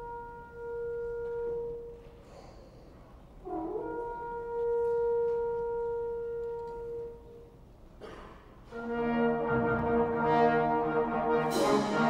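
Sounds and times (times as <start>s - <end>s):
wind instrument holding long note: 0.0s - 2.2s, 3.4s - 7.6s, 8.7s - 12.0s.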